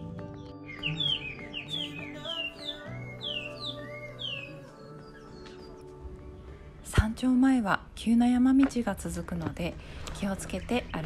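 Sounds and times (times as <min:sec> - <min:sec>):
soft music of held tones: 0:00.0 - 0:07.4
songbird whistling notes: 0:00.7 - 0:05.9.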